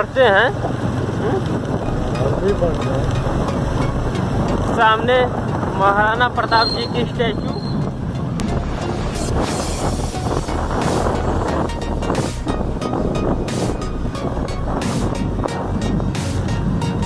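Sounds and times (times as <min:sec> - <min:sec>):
motorcycle engine running: 0:00.0 - 0:17.0
wind buffeting microphone: 0:00.0 - 0:17.0.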